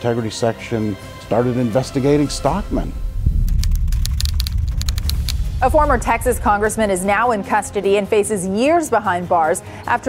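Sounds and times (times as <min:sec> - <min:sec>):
steady deep rumble: 0:01.9 - 0:08.2
rapid keyboard key clicks: 0:03.5 - 0:05.4.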